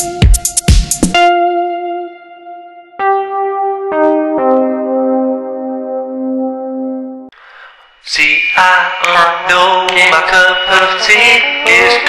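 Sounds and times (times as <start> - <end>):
chant-like vocal: 8.1 - 12.0.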